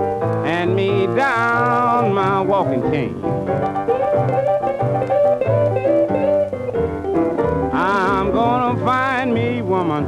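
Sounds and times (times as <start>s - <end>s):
guitar: 0.0s - 10.0s
piano: 0.0s - 10.0s
plucked string bass: 0.0s - 10.0s.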